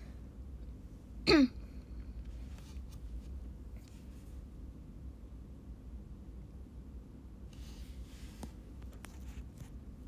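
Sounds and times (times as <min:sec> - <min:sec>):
woman clearing her throat: 0:01.2 - 0:01.7.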